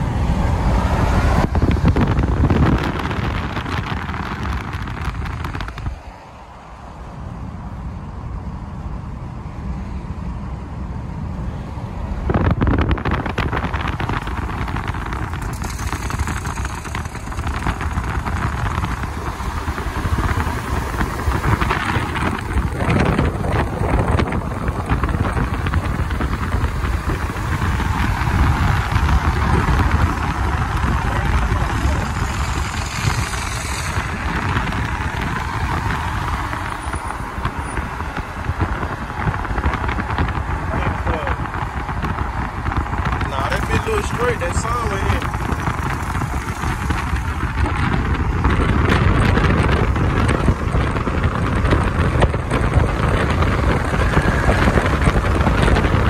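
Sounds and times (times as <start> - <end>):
car tyre noise: 0.0 - 56.0
passing traffic: 0.0 - 56.0
wind rush: 0.0 - 56.0.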